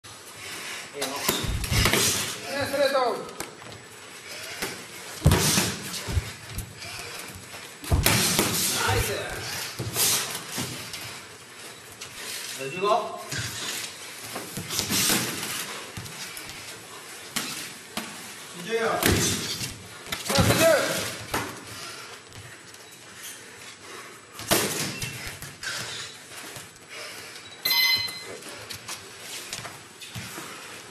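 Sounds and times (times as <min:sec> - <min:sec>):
footwork on canvas: 0:00.1 - 0:30.9
boxing gloves thudding: 0:01.3 - 0:02.8, 0:04.4 - 0:10.9
padded gloves thudding: 0:05.2 - 0:06.8
electronic timer beep: 0:27.6 - 0:28.4.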